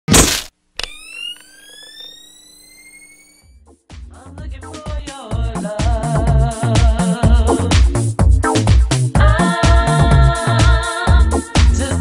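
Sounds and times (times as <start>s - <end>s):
sharp hit: 0.1s - 0.5s
low bass music: 3.6s - 12.0s.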